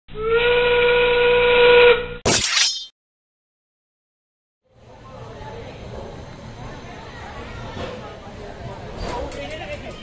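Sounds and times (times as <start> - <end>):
steam locomotive whistle: 0.1 - 2.2.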